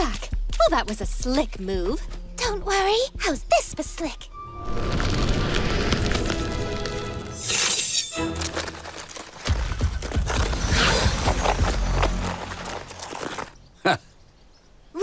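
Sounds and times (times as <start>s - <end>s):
orchestral background music: 1.3s - 13.1s
crackling and shattering: 4.6s - 13.6s.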